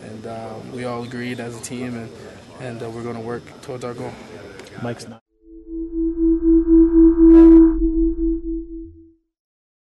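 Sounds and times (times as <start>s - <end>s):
wavering electronic humming tone: 5.4s - 9.1s
low rumble: 5.5s - 9.0s.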